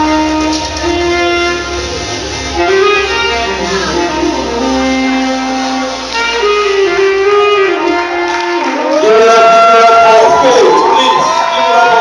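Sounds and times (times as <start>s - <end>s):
backing track music: 0.0s - 12.0s
saxophone long notes: 0.0s - 12.0s.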